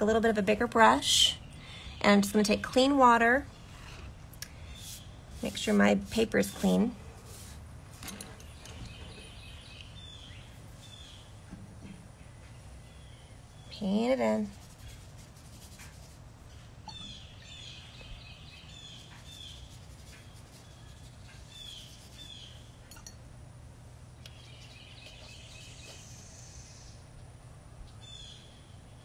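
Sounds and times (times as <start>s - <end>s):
steady low hum: 0.0s - 29.0s
faint bird chirps: 24.2s - 27.1s.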